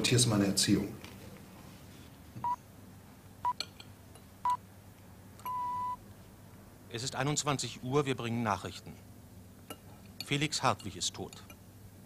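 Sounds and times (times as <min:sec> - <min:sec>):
radio time signal beeps: 0:05.5 - 0:06.0.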